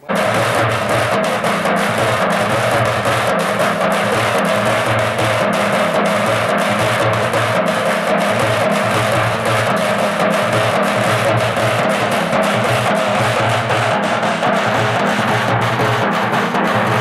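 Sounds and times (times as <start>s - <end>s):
frame drums beaten with sticks: 0.0s - 17.0s.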